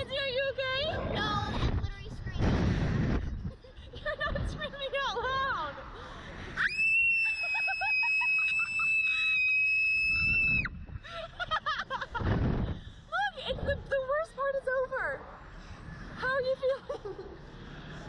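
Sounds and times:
wind rushing past microphone: 0.0 - 6.6, 9.8 - 14.3
woman laughing: 3.5 - 5.4, 7.2 - 9.4, 11.0 - 12.3, 16.5 - 17.4.

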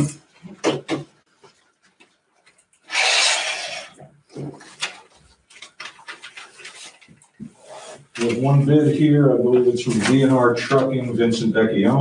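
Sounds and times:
paper envelope tearing: 2.9 - 3.9.

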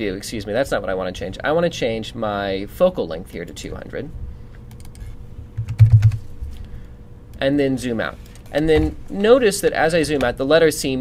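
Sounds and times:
keyboard keys typing: 5.6 - 6.2.

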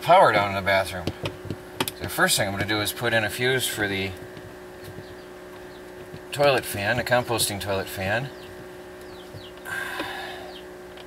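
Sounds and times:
low hum: 0.0 - 11.0
man breathing out through nose: 9.6 - 10.6.

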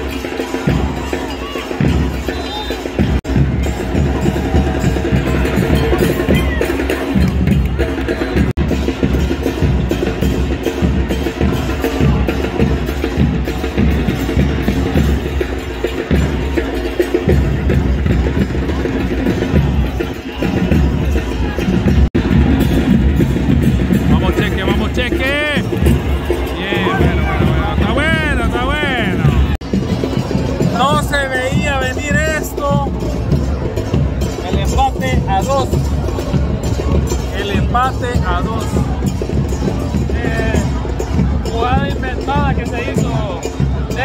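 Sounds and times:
bass drums and percussion beating: 0.0 - 44.0
crowd voices: 0.0 - 44.0.

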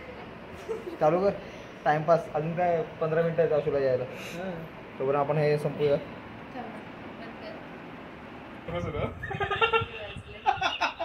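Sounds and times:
people laughing: 9.2 - 11.0.

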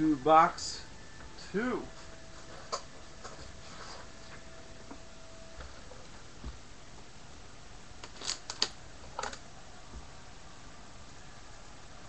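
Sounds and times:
wrapping clicks and crackles: 8.0 - 9.4.

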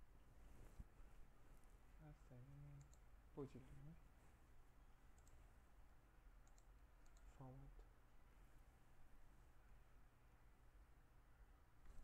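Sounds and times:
low steady hum: 0.0 - 12.0
computer mouse clicks: 2.7 - 3.1, 5.1 - 5.4, 6.4 - 7.9.

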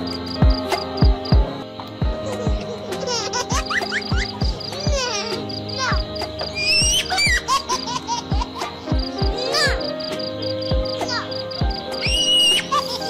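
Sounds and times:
music with kick-drum beat: 0.0 - 5.2, 5.9 - 7.5, 8.3 - 12.2
high chirping glides: 0.0 - 13.0.

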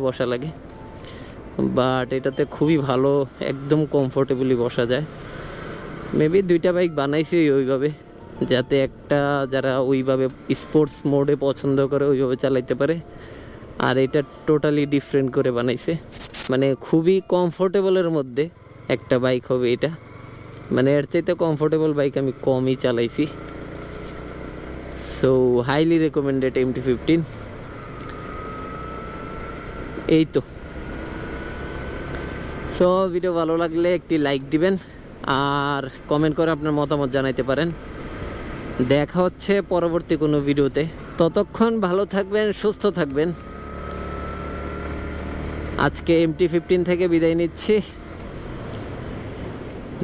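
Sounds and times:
wind and road noise: 0.0 - 50.0.

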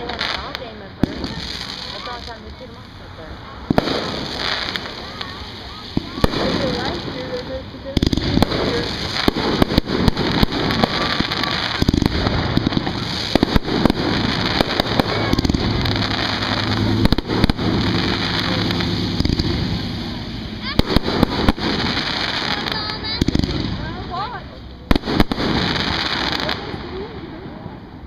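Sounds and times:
fireworks bangs and crackles: 0.0 - 28.0
steady low rumble: 0.0 - 28.0.

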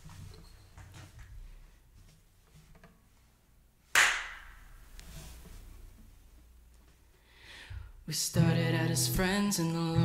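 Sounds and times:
sharp hand clap: 3.9 - 4.8.

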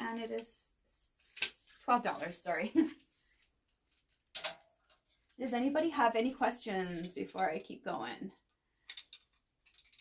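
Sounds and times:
hanger clacking on metal rack: 4.3 - 4.8.

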